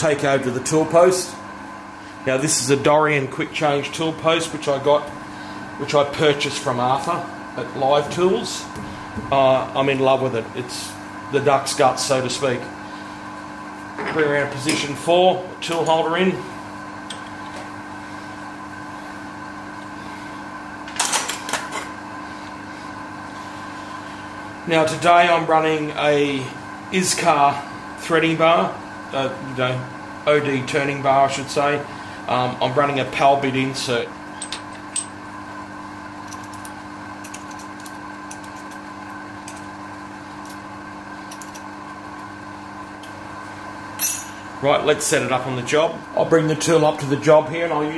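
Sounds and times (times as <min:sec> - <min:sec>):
steady machine hum: 0:00.0 - 0:47.9.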